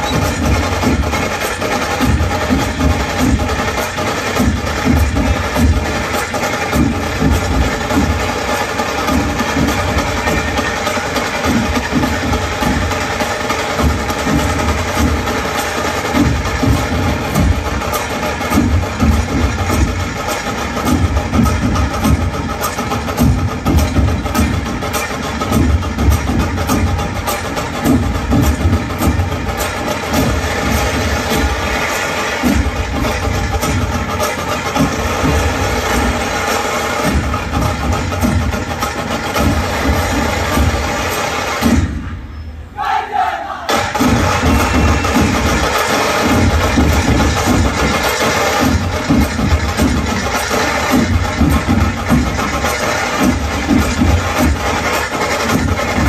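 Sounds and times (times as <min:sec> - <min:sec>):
drums playing driving rhythm: 0:00.0 - 0:42.2, 0:43.6 - 0:56.0.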